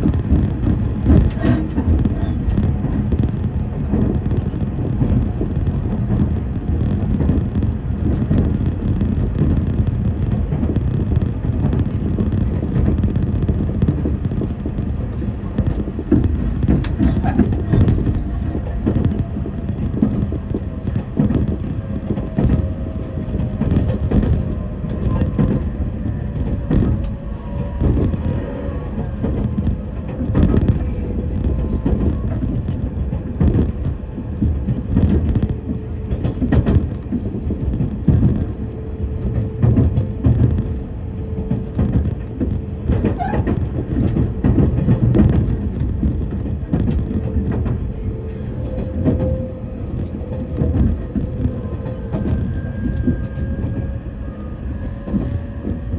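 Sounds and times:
electric train rumble: 0:00.0 - 0:55.9.

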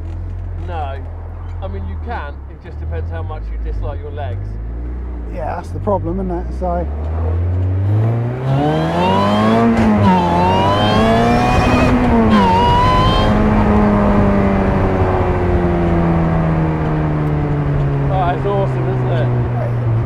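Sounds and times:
car engine revving hard: 0:07.0 - 0:16.5.

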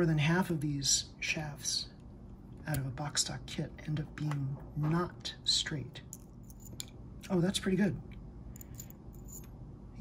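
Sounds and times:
light clicks of small parts: 0:06.1 - 0:07.4.

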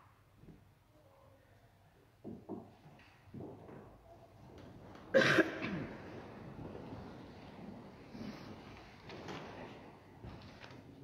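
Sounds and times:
person coughing: 0:05.1 - 0:06.0.

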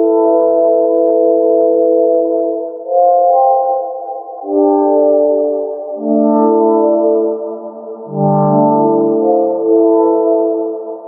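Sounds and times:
synthesizer playing sustained chords: 0:00.0 - 0:11.0.

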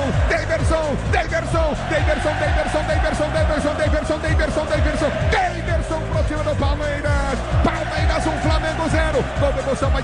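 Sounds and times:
radio jingle with fast drumbeat: 0:00.0 - 0:10.0.

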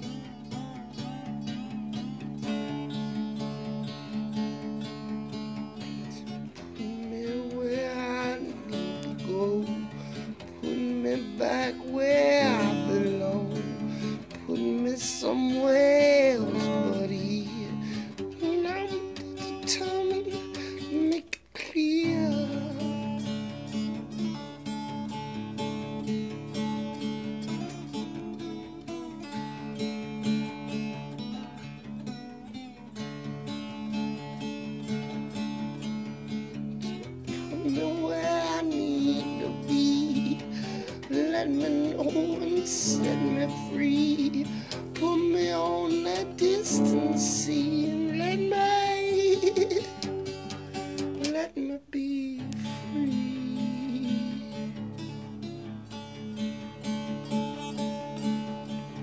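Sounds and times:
acoustic guitar chords: 0:00.0 - 0:59.0
wordless vocal melody: 0:05.3 - 0:24.4, 0:36.8 - 0:55.8.

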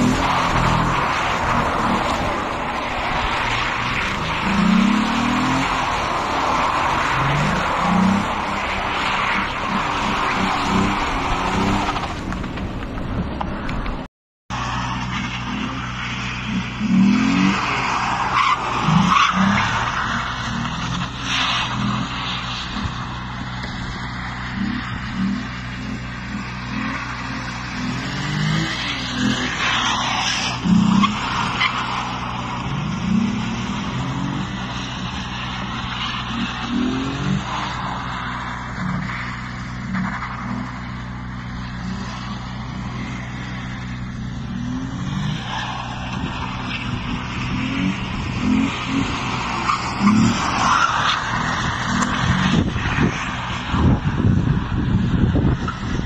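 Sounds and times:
car engine revving: 0:00.0 - 0:12.6, 0:14.5 - 0:56.0.

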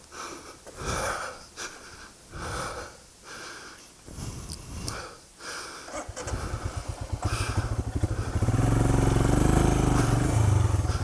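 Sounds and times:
person breathing heavily: 0:00.0 - 0:08.7, 0:09.8 - 0:11.0.

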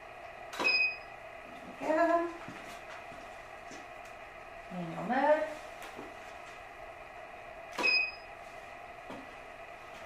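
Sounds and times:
faint hum: 0:00.0 - 0:10.0
high electronic beep: 0:07.8 - 0:08.3.

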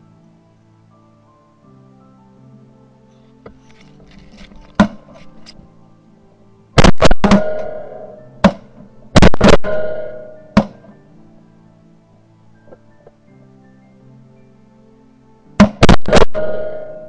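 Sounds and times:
background music: 0:00.0 - 0:17.0
shotgun blasts echoing: 0:06.8 - 0:08.6, 0:09.2 - 0:10.8, 0:15.6 - 0:17.0.

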